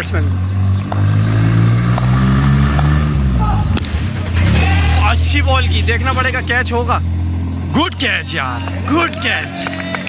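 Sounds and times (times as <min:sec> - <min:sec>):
vehicle engine passing by: 0:00.0 - 0:10.0.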